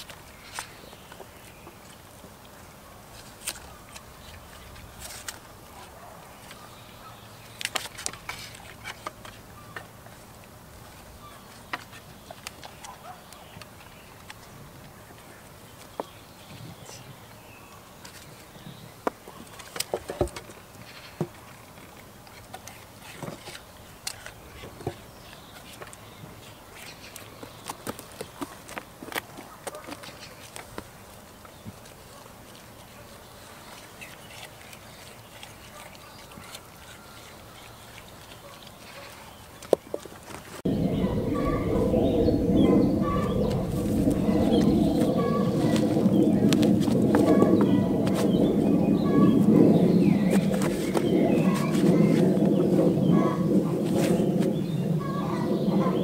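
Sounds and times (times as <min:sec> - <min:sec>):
goats crunching treats: 0:19.3 - 0:40.6
birds chirping: 0:40.6 - 0:56.0
steady low rushing noise: 0:40.7 - 0:56.0.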